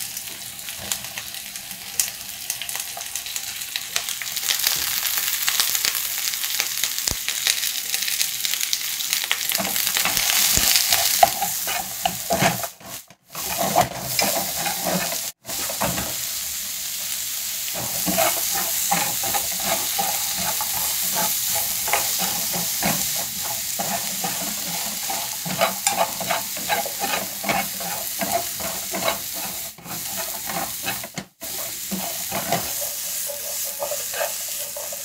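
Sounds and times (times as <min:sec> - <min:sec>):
vegetables sizzling in a pan: 0:00.0 - 0:35.0.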